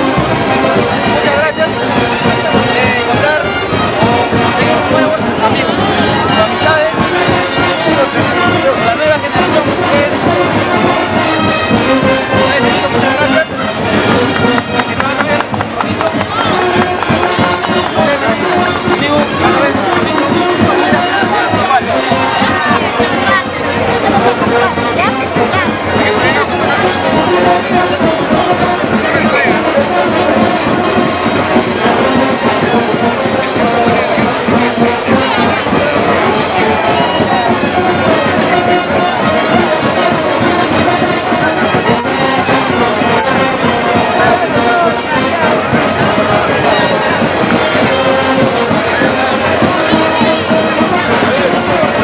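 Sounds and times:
brass band playing: 0:00.0 - 0:52.0
people talking: 0:00.0 - 0:52.0.

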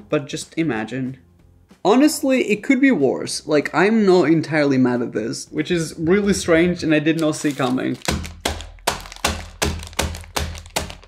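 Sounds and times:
glass pounding sweets on table: 0:08.0 - 0:11.0.

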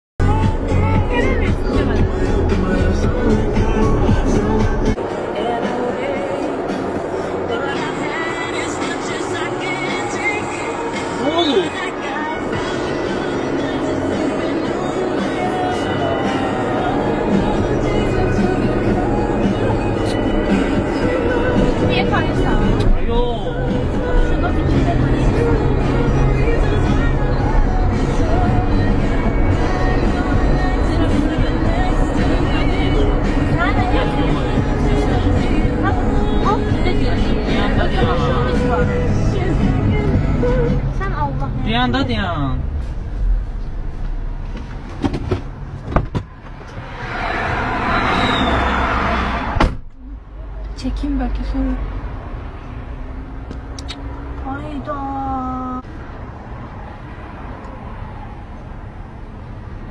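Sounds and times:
music with singing: 0:00.2 - 0:41.7
car idling: 0:00.2 - 0:56.4
tongue clicks: 0:53.7 - 0:54.1.

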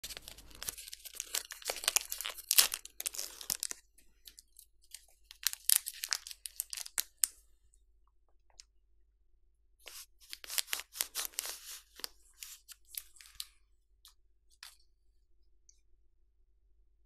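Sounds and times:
foil wrapper crinkling: 0:00.0 - 0:07.3, 0:09.9 - 0:13.5.

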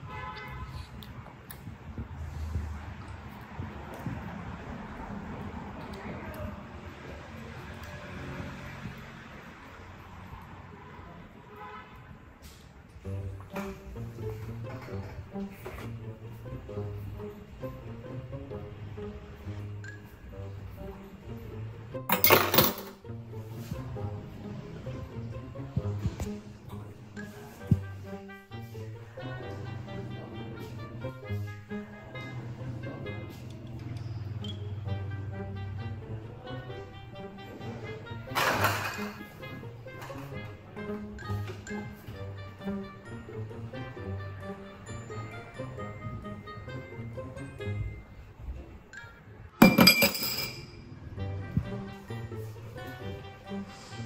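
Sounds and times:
cutlery clattering in metal sink: 0:22.1 - 0:23.0, 0:38.4 - 0:39.2, 0:49.6 - 0:50.7
dishes clinking in a metal sink: 0:38.4 - 0:39.2.

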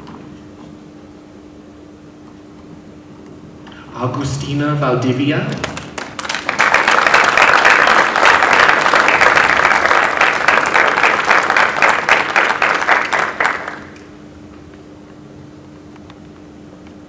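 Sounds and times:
faint steady hum: 0:00.0 - 0:17.0
audience applauding: 0:05.5 - 0:14.1.

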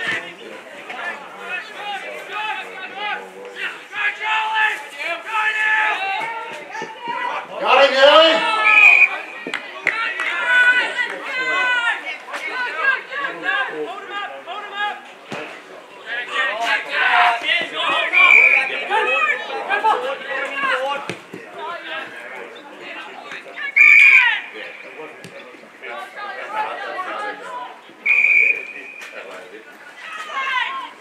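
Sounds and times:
voices shouting and calling out: 0:00.0 - 0:31.0.

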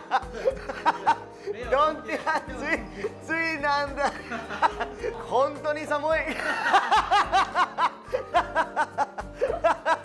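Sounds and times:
men laughing heartily: 0:00.0 - 0:03.2, 0:04.0 - 0:05.3, 0:06.3 - 0:10.0
background music with bass: 0:00.0 - 0:10.0.

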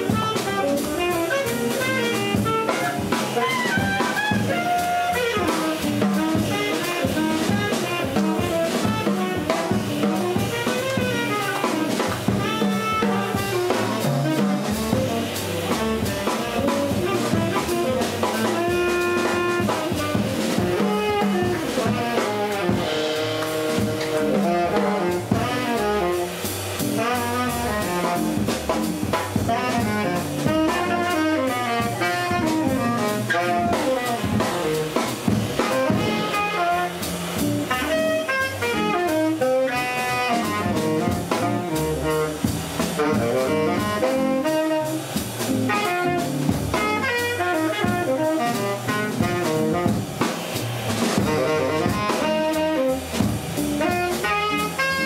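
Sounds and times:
jazz band backing: 0:00.0 - 0:55.0
saxophone: 0:00.0 - 0:55.0.

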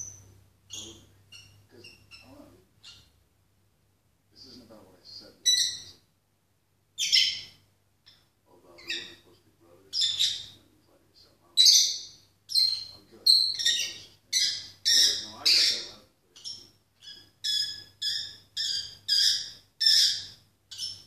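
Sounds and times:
bird chirping and squawking: 0:00.0 - 0:03.2, 0:05.4 - 0:06.0, 0:07.0 - 0:09.2, 0:09.9 - 0:10.6, 0:11.6 - 0:21.0.

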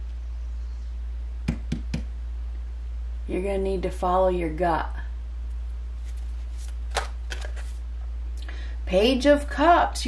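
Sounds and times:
steady low hum: 0:00.0 - 0:10.0
cards flicking and rustling: 0:06.0 - 0:07.8.

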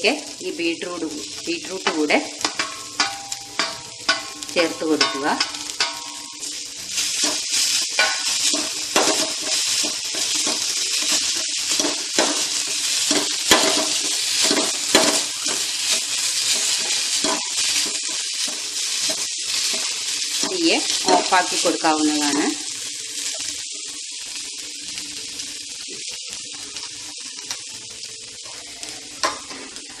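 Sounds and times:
vegetables sizzling in oil: 0:00.0 - 0:30.0
spatula scraping a pan: 0:02.4 - 0:21.7, 0:28.4 - 0:30.0.

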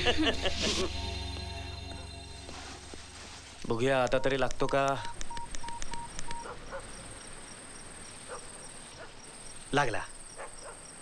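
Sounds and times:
crickets chirping: 0:00.7 - 0:11.0
phone keypad beeps: 0:04.1 - 0:06.6.

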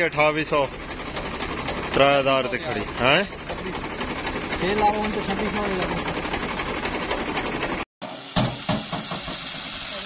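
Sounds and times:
farm engine running: 0:00.0 - 0:10.0.

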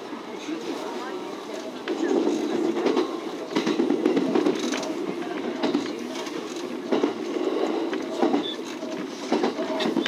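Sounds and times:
train wheels rumbling on rails: 0:00.2 - 0:10.0
wheels clicking over rail joints: 0:01.5 - 0:10.0.

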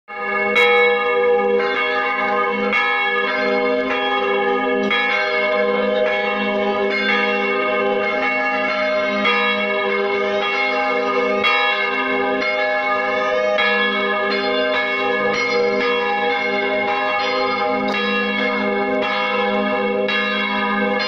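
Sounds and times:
church bells ringing: 0:00.1 - 0:21.0.

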